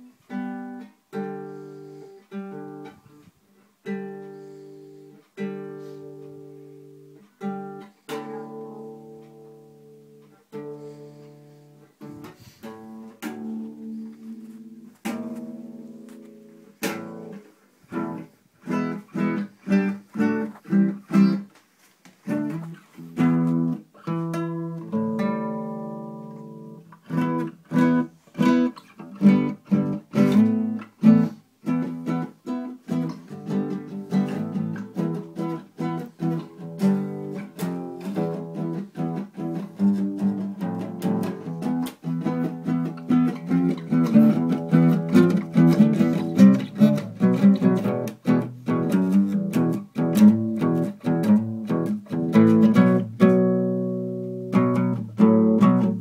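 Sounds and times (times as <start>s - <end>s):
acoustic guitar strumming: 0.0s - 3.2s, 3.8s - 56.0s.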